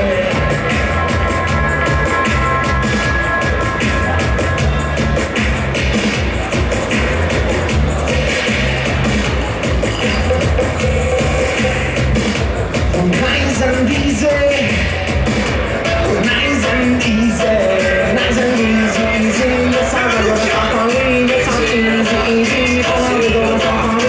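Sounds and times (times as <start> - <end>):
dub reggae music from vinyl: 0.0 - 24.0
heavy repeating bass line: 0.0 - 24.0
steady drum beat: 0.0 - 24.0.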